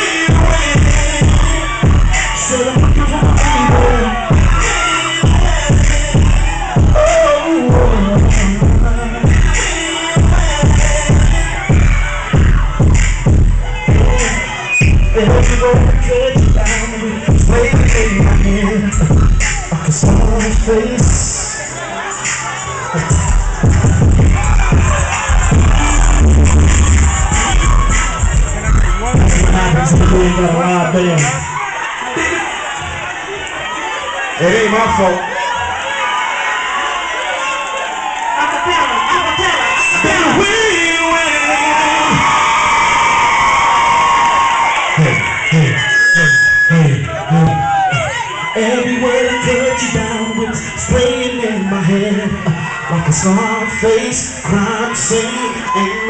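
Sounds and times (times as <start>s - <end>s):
loud music with heavy bass beat: 0.0s - 35.8s, 38.6s - 56.0s
crowd voices and cheering: 0.0s - 56.0s.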